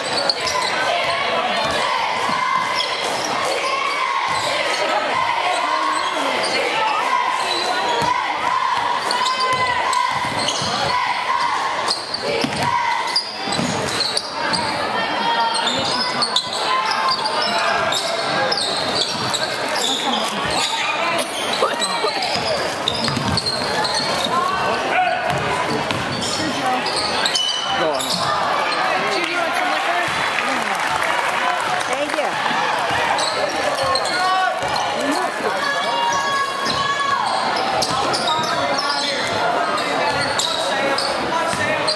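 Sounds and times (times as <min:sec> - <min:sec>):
spectators chattering: 0:00.0 - 0:41.9.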